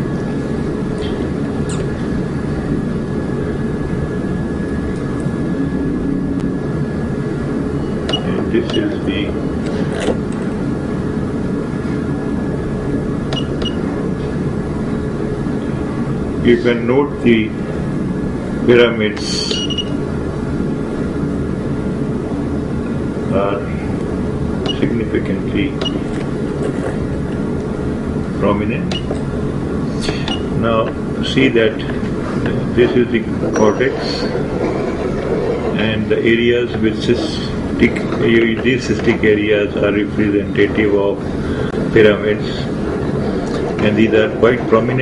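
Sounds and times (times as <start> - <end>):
low rumbling hum: 0.0 - 45.0
faint steady high tone: 33.5 - 34.3.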